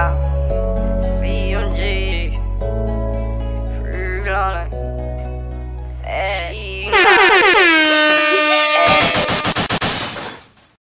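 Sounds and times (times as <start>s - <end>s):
air horn sound effect: 6.9s - 9.7s.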